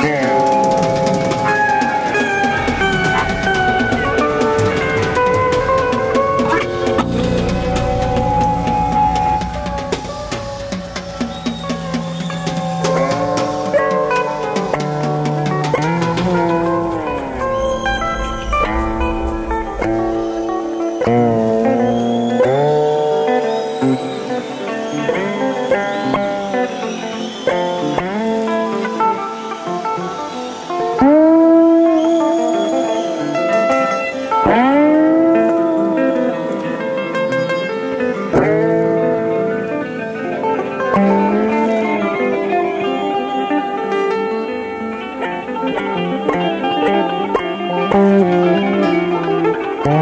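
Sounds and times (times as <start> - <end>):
electric guitar improvisation: 0.0 - 50.0.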